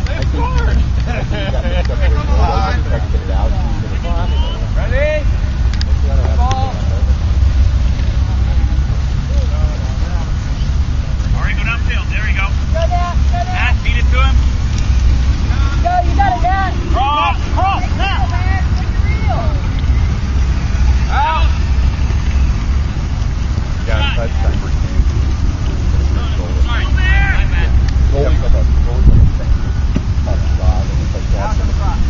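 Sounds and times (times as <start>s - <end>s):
distant voices calling out: 0.0s - 32.0s
wind buffeting microphone: 12.6s - 32.0s.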